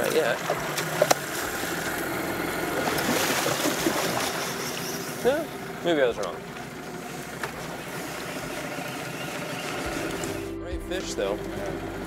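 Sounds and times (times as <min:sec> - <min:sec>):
river water rushing: 0:00.0 - 0:05.8, 0:06.4 - 0:10.5
outboard motor idling: 0:00.0 - 0:12.0
fish splashing at surface: 0:02.7 - 0:05.2.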